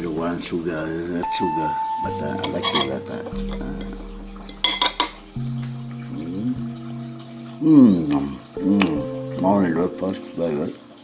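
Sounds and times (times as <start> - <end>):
background music: 0.0 - 11.0
metal fork clinking on plate: 2.3 - 5.2.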